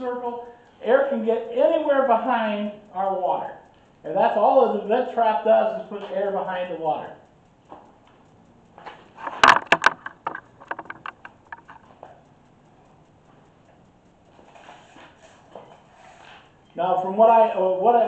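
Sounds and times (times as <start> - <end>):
light irregular ticks: 0.0 - 18.0
sharp knocks and clicks: 7.2 - 15.8.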